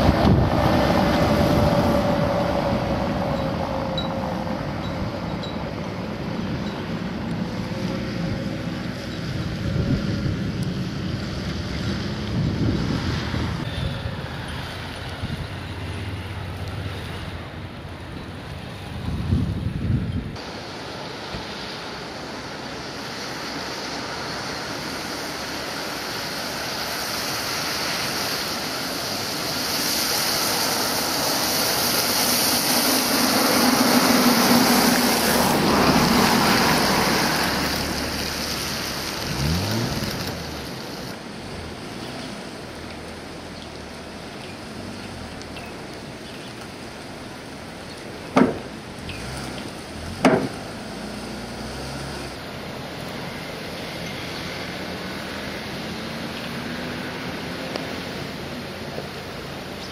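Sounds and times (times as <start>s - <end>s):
tyres hissing on wet road: 0.0s - 59.9s
wind: 0.0s - 59.9s
car engine driving by: 29.3s - 59.1s.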